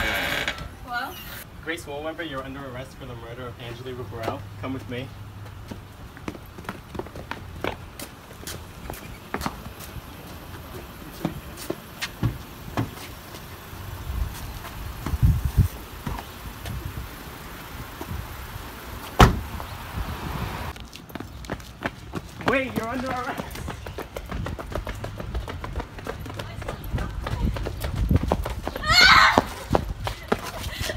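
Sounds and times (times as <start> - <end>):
footsteps on steps and pavement: 2.2 - 20.1, 20.7 - 30.9
car door slamming: 19.1 - 19.6.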